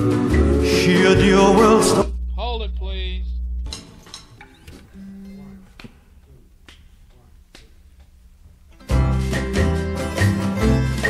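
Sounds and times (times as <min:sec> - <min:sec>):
low steady hum: 0:00.5 - 0:08.8
finger snaps: 0:06.6 - 0:08.1.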